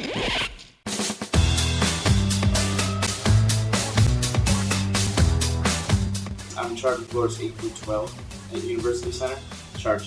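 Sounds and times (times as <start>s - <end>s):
music with drum-kit beat: 0.9s - 10.0s.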